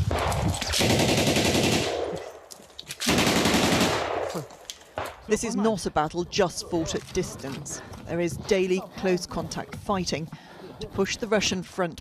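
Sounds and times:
automatic rifle fire: 0.0s - 2.2s, 3.0s - 4.4s.

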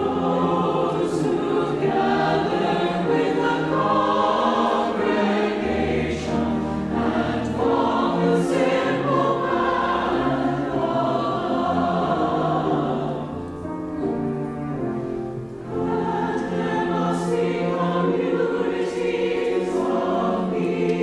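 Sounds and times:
mixed choir singing: 0.0s - 14.0s, 15.6s - 21.0s.

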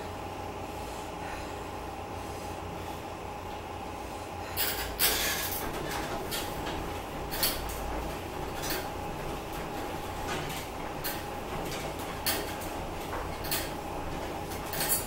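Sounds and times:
elliptical trainer whir: 1.8s - 15.0s
handles and pedals clacking: 4.6s - 15.0s.

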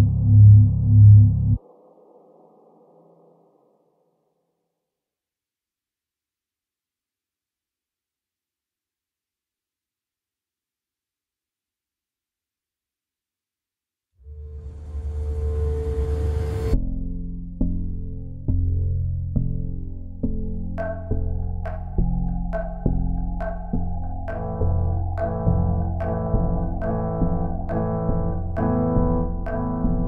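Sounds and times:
deep throbbing drone: 0.0s - 3.3s, 14.3s - 30.0s
low rumbling swell: 20.8s - 30.0s.

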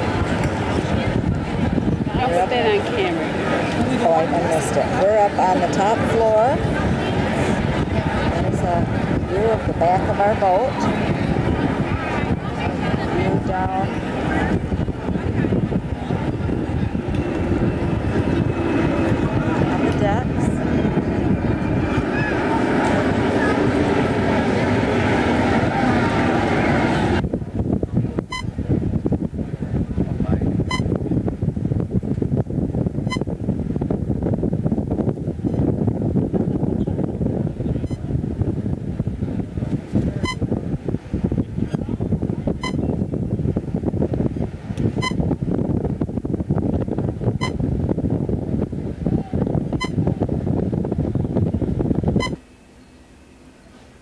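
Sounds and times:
crowd voices: 0.0s - 31.2s, 34.7s - 54.0s
wind buffeting microphone: 0.0s - 53.0s.

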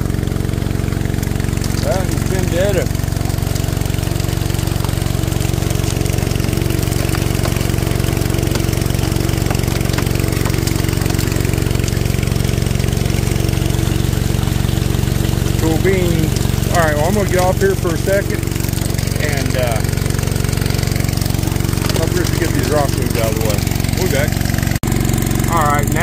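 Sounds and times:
small gasoline engine running: 0.0s - 26.0s.

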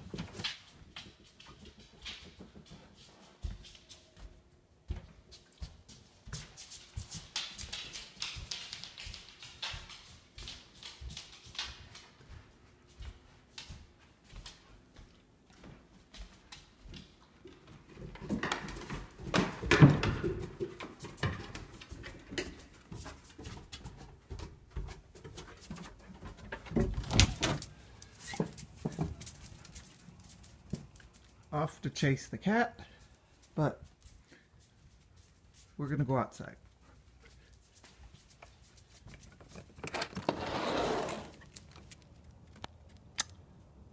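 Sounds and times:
dog moving about: 5.8s - 12.6s, 15.6s - 31.5s, 36.7s - 43.0s
clicks knocks and shuffling: 38.2s - 43.0s.

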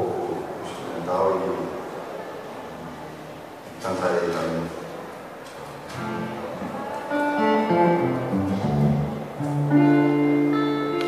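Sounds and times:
electric guitar melody: 5.9s - 11.0s.

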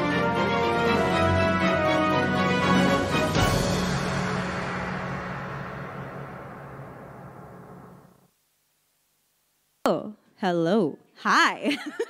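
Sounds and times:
intro theme closing hit: 2.3s - 8.3s.

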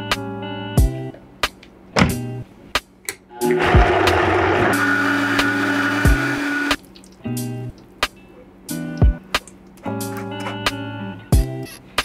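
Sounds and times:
blender running: 3.4s - 6.8s.

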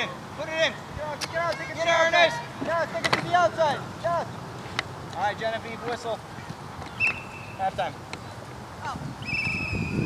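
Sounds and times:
referee's whistle long blast: 9.2s - 10.0s.

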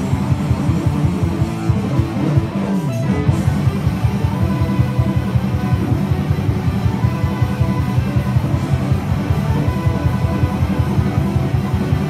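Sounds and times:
loud live rock music: 0.0s - 12.0s.

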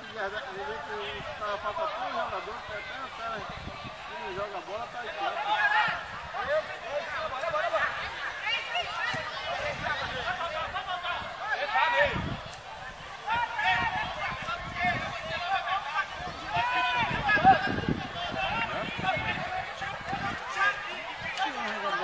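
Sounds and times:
overlapping voices of onlookers: 0.0s - 22.0s.

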